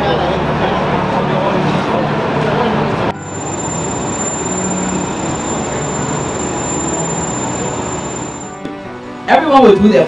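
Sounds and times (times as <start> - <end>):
high whine: 3.2 - 8.6
machinery rumbling: 3.2 - 8.6.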